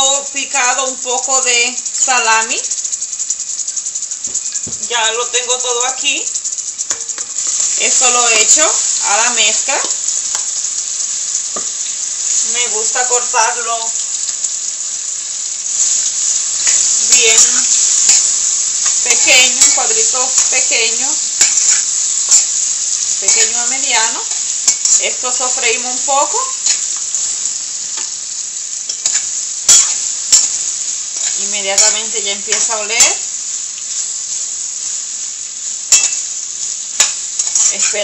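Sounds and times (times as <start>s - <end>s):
vegetables sizzling in oil: 0.0s - 38.0s.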